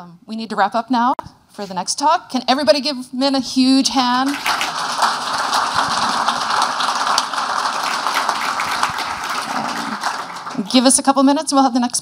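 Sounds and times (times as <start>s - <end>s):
audience applauding: 4.3s - 11.0s.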